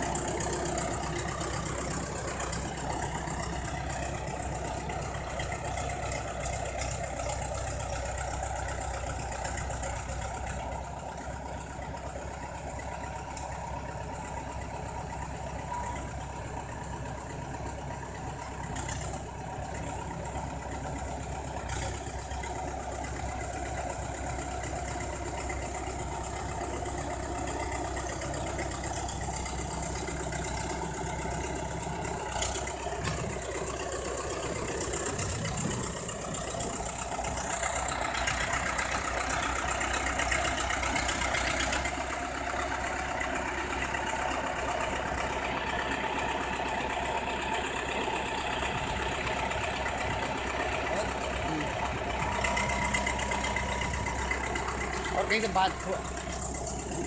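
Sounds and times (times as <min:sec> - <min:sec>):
bulldozer diesel engine running: 0:00.0 - 0:57.0.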